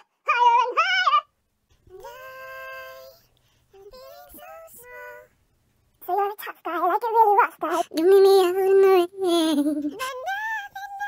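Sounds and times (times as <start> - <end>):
sped up woman singing: 1.9 - 5.4, 6.0 - 11.0.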